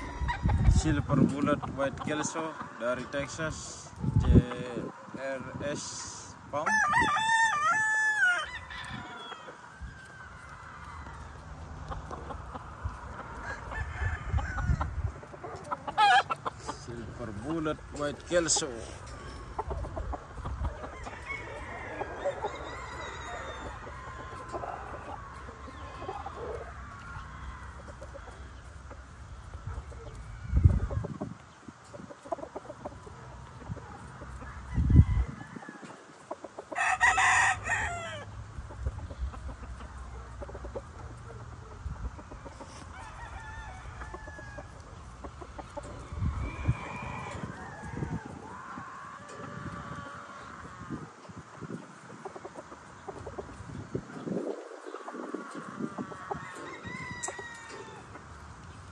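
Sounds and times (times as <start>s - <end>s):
rooster crowing: 0.0s - 0.6s, 6.6s - 11.4s, 13.3s - 15.0s, 21.0s - 25.4s, 34.4s - 36.0s, 36.8s - 38.3s, 42.7s - 44.8s, 46.0s - 50.9s, 55.3s - 58.1s
chickens clucking: 0.0s - 58.9s.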